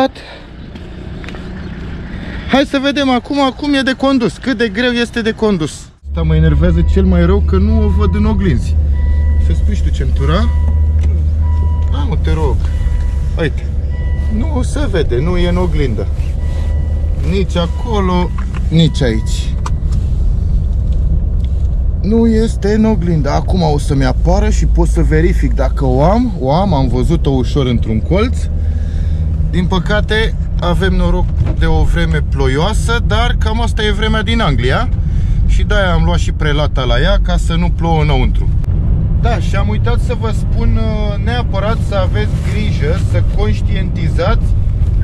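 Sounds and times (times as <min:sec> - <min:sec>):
car engine idling: 0:00.0 - 0:45.0.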